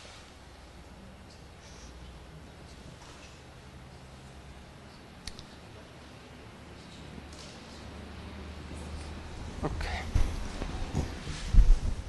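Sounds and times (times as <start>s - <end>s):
low steady hum: 0.0s - 12.0s
sharp clicks: 5.2s - 5.5s.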